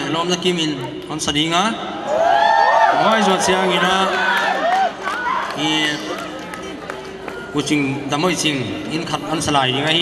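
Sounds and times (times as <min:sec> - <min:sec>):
man speaking into a microphone: 0:00.0 - 0:01.9, 0:02.9 - 0:04.4, 0:05.6 - 0:06.2, 0:07.5 - 0:10.0.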